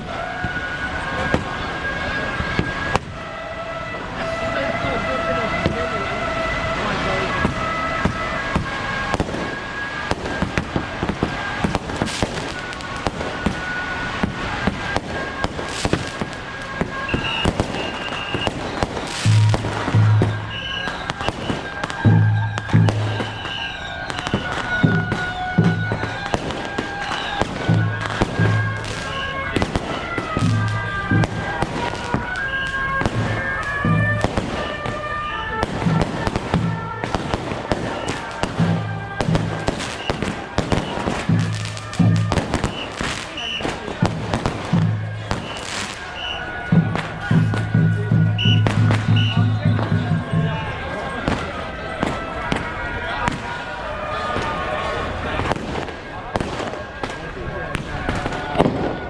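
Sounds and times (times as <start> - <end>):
firecrackers crackling: 0.0 - 59.0
wind instrument melody: 0.0 - 59.0
deep drum beating: 19.2 - 20.5, 29.6 - 32.3, 33.0 - 35.0, 44.0 - 45.6, 46.7 - 50.8.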